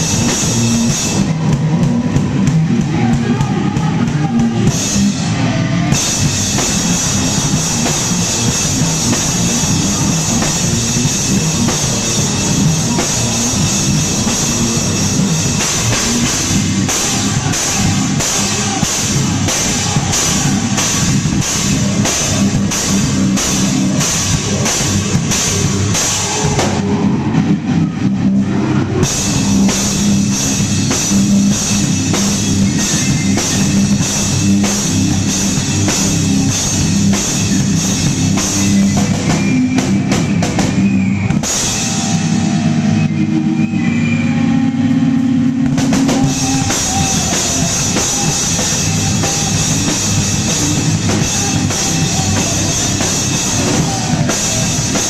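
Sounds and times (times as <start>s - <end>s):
fast dense drumming: 0.0s - 43.8s, 45.4s - 55.0s
heavy rock band playing: 0.0s - 55.0s.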